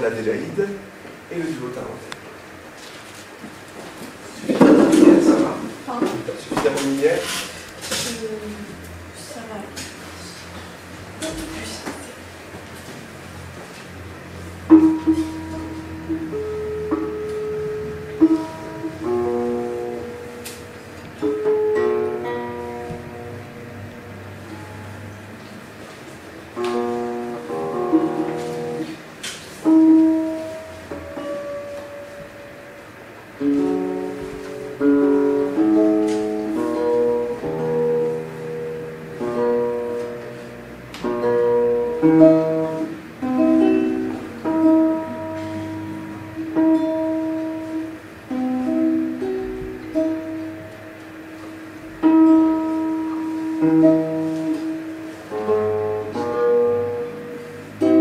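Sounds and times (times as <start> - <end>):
acoustic guitars playing duet: 2.2 - 58.0.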